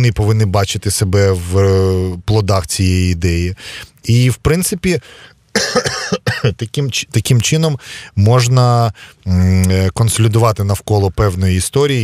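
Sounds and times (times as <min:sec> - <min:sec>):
man talking close to microphone: 0:00.0 - 0:12.0.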